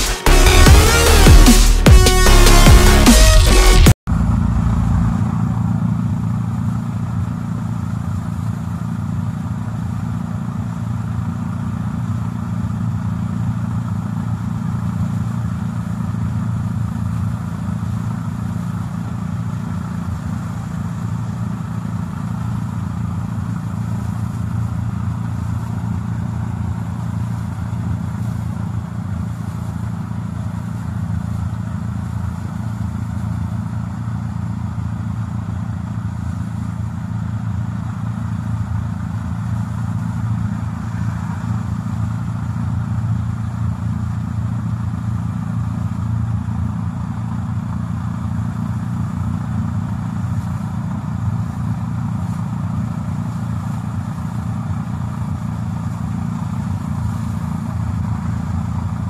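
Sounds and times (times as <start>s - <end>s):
tractor engine droning: 0.0s - 59.0s.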